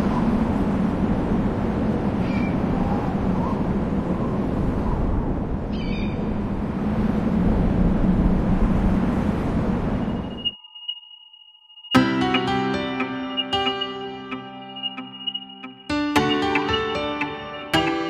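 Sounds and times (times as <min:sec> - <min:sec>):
wind noise: 0:00.0 - 0:10.5.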